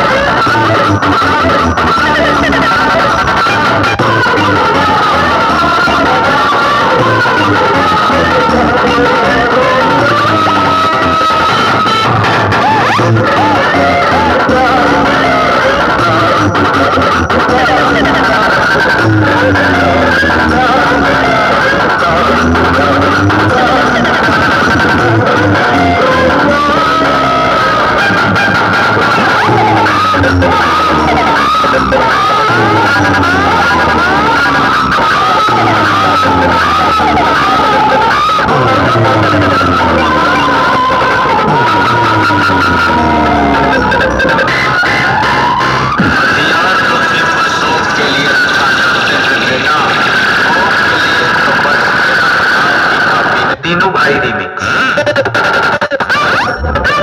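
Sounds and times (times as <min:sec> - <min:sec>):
falling pitch sweeps: 0:00.0 - 0:46.7
heavy bass: 0:00.0 - 0:53.6, 0:56.4 - 0:57.0
loud music with singing voice: 0:00.0 - 0:57.0.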